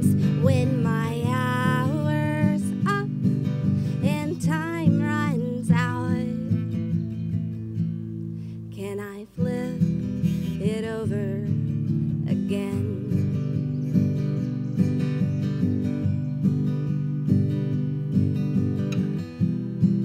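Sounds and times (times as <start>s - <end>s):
woman singing: 0.0s - 7.3s, 8.6s - 13.8s
acoustic guitar strummed: 0.0s - 20.0s.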